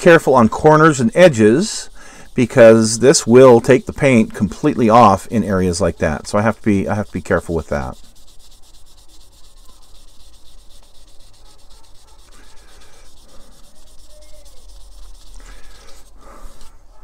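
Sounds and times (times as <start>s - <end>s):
polishing pad rubbing on plastic: 0.0s - 17.0s.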